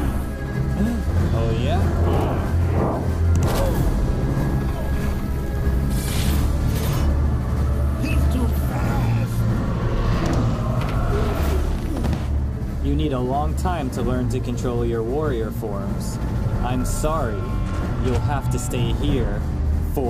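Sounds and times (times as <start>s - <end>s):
dramatic tense film music: 0.0s - 20.0s.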